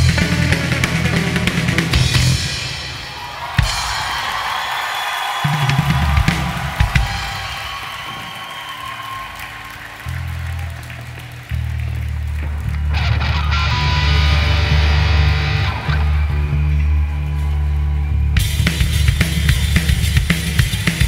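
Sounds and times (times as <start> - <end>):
electric guitars playing rock: 0.0 - 4.0, 9.4 - 21.0.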